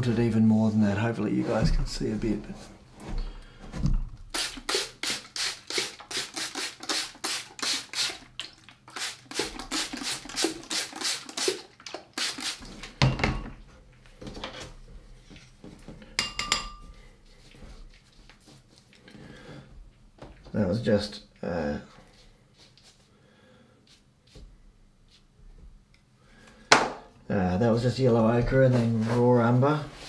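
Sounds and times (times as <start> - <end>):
spray bottle spritzing: 4.3 - 12.8.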